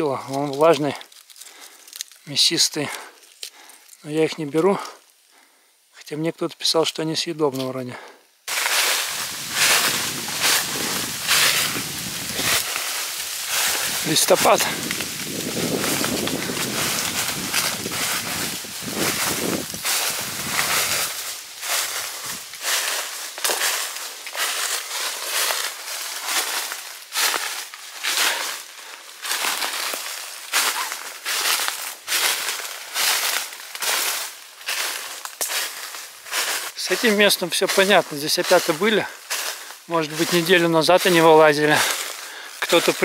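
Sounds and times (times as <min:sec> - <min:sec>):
footsteps crunching dry leaves: 0:00.0 - 0:05.4, 0:08.5 - 0:43.0.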